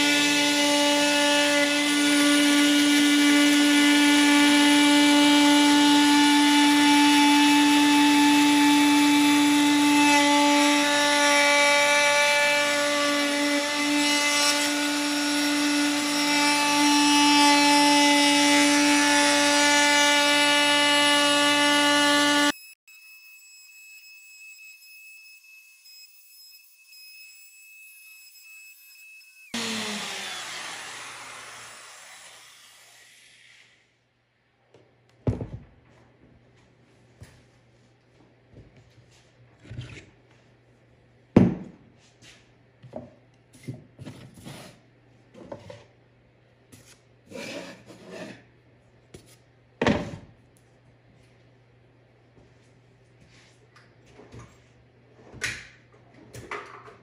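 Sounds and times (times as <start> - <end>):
router cutting wood: 0.0 - 23.1, 25.4 - 33.8.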